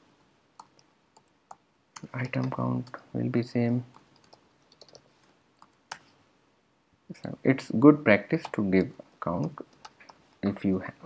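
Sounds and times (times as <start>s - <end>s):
keyboard and mouse clicks: 0.6s - 3.0s, 3.9s - 6.1s, 8.4s - 10.2s.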